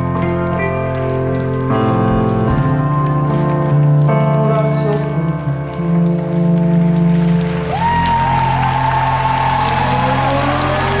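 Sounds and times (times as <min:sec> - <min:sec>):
crowd applause and cheering: 0:00.0 - 0:11.0
live pop-rock band chords: 0:00.0 - 0:11.0.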